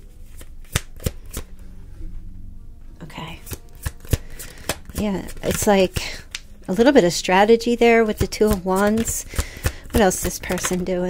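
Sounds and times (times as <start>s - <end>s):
cards being shuffled by hand: 0.2s - 1.5s, 3.4s - 6.8s, 8.1s - 11.0s
sharp snaps of cards: 0.3s - 1.5s, 3.4s - 5.6s, 6.2s - 6.5s.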